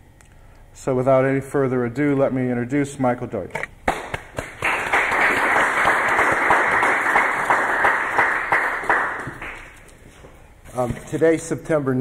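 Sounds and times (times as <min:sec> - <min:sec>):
audience applauding: 0:03.9 - 0:09.8.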